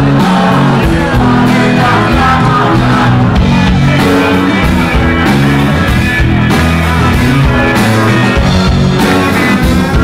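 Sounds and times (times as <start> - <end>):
live band with plucked strings: 0.0 - 10.0.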